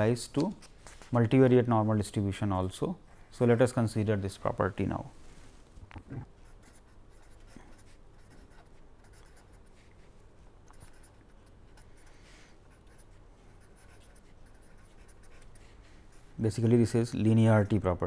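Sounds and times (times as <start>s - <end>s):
pen scratching on paper: 6.4s - 9.8s, 10.7s - 16.3s.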